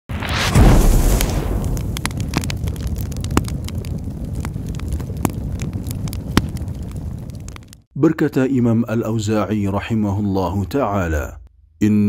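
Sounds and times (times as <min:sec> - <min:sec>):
fire rumbling and crackling: 0:00.1 - 0:07.9.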